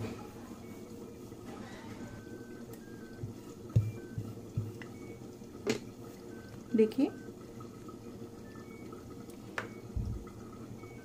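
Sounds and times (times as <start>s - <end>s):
rolling pin rolling dough: 1.5s - 5.0s.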